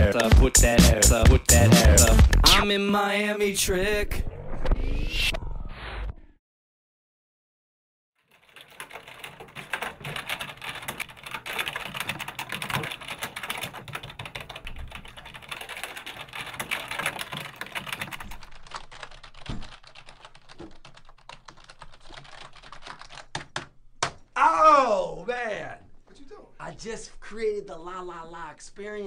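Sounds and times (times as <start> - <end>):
fast keyboard typing: 8.3 - 23.8.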